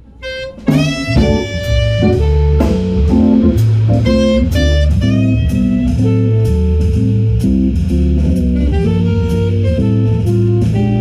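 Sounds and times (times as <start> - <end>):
drum kit: 0.0 - 11.0
saxophone: 0.0 - 11.0
bass line: 0.2 - 11.0
electric guitar: 0.6 - 11.0.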